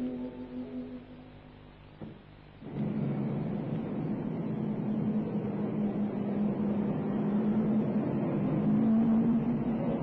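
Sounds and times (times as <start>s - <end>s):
mechanical rumble with low hum: 0.0s - 10.0s.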